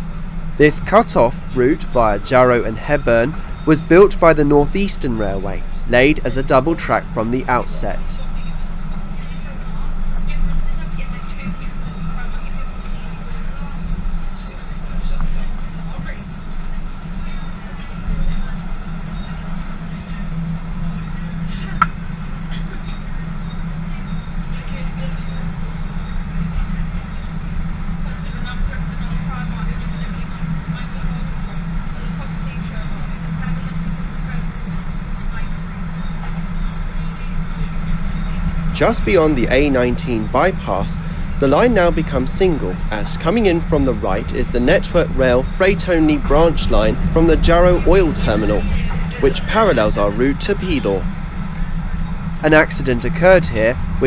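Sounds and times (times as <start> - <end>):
electric train rumble: 0.0 - 54.0
faint steady hum: 0.0 - 54.0.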